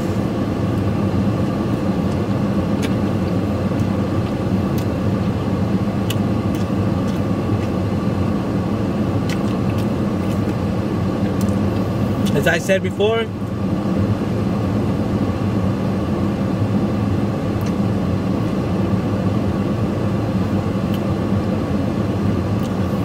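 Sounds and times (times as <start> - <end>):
vehicle engine idling: 0.0 - 19.6.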